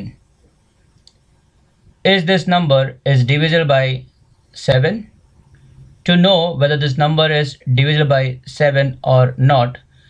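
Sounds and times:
person speaking: 2.1s - 4.0s, 4.6s - 5.1s, 5.8s - 9.8s.

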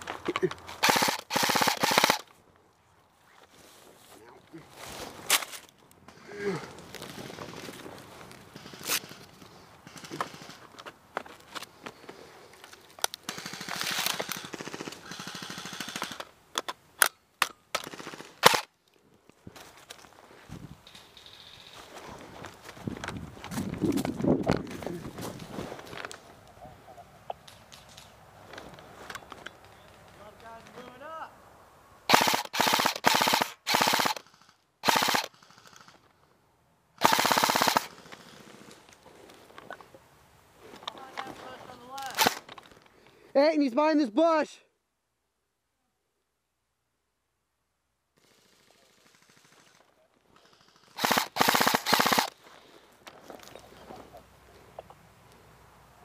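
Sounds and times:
rustling through brush: 0.0s - 15.3s, 17.8s - 31.0s, 37.0s - 43.3s
airsoft guns firing: 0.8s - 2.3s, 9.8s - 10.6s, 13.2s - 16.3s, 17.7s - 18.7s, 32.1s - 35.9s, 37.0s - 38.4s, 42.0s - 42.5s, 50.6s - 52.4s.

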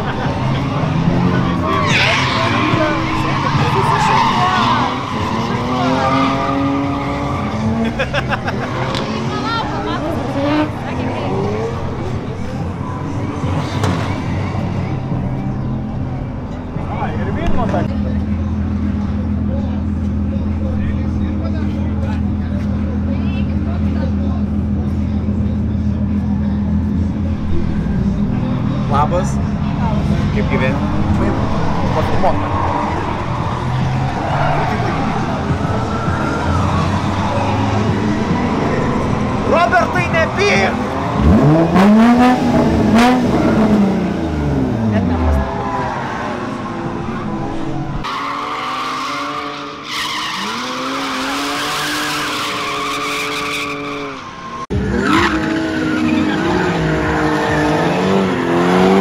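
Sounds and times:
car engines revving: 0.0s - 59.0s
tyres skidding: 0.0s - 59.0s
low engine drone: 17.8s - 45.5s.

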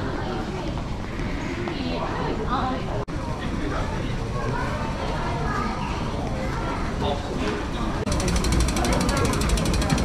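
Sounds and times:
children's voices: 0.0s - 7.2s
chatter of passers-by: 0.0s - 10.0s.

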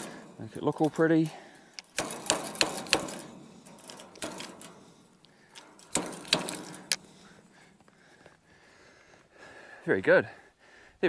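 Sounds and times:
wire fence netting rattling: 0.0s - 7.8s.

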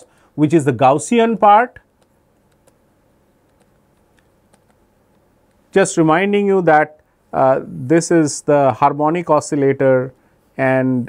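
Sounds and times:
stylus tapping on tablet screen: 1.9s - 5.7s.

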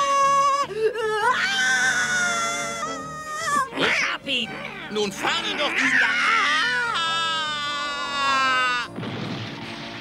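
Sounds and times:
cartoon cat yowling: 1.3s - 4.1s, 5.2s - 8.9s
noisy crash: 9.0s - 10.0s.

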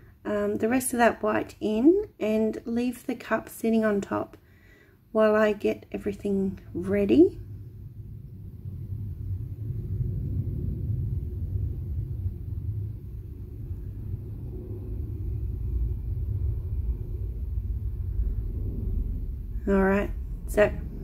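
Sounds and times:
low background rumble: 0.0s - 21.0s.

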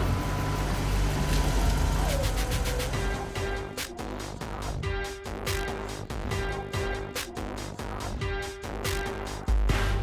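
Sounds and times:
car engine rumble: 0.0s - 5.0s.

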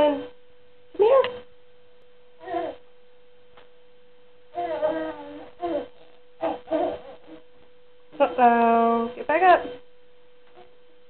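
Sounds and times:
baby babbling: 2.4s - 2.8s, 4.6s - 7.4s.

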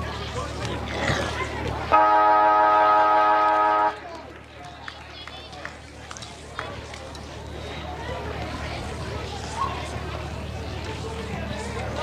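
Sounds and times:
siren horn blast: 2.0s - 4.0s.

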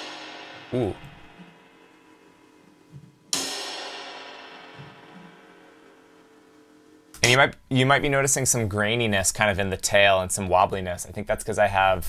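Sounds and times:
cymbal hit ringing: 0.0s - 2.6s, 3.3s - 7.1s.

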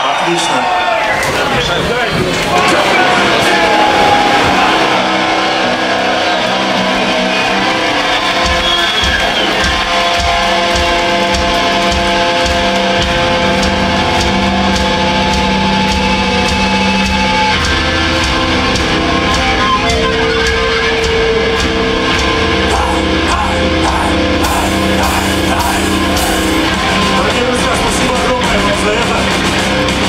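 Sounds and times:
heavy metal band playing: 0.0s - 30.0s
drums beating: 1.0s - 30.0s.

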